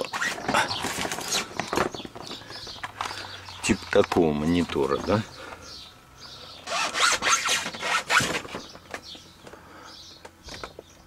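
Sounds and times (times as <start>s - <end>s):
scraping rubbing strokes: 6.7s - 8.6s.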